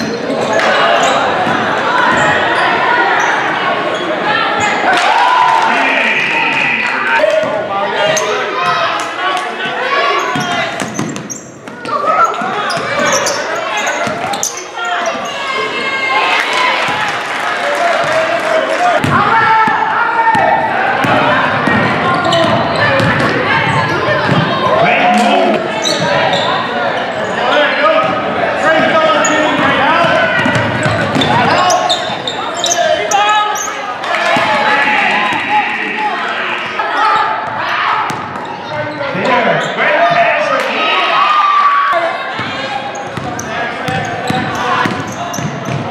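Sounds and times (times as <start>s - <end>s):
players and spectators talking: 0.0s - 45.9s.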